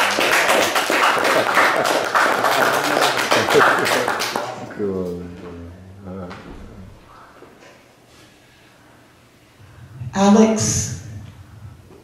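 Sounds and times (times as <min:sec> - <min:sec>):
audience applause: 0:00.0 - 0:04.7.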